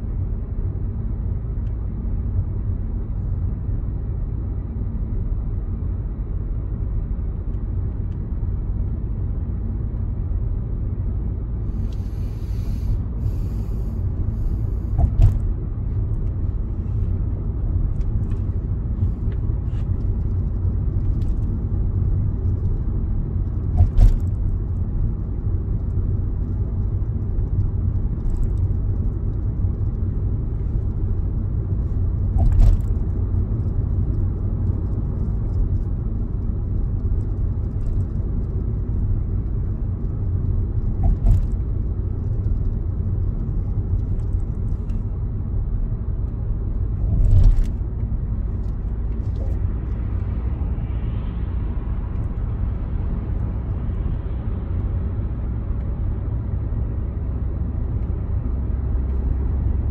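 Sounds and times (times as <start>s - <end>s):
road and engine rumble: 0.0s - 59.9s
brief thumps: 14.9s - 15.5s.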